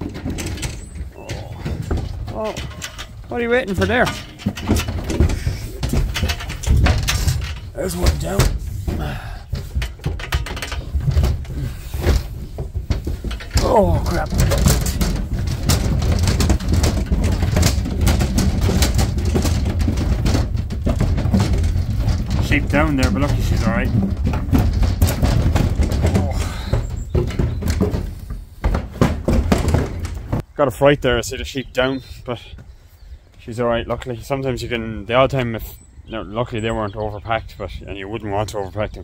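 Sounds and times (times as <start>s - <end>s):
hooves knocking on metal floor: 0.0s - 30.4s.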